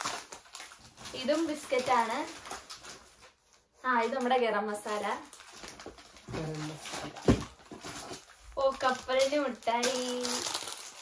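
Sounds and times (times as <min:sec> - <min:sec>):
plastic food packets crinkling: 0:00.0 - 0:11.0.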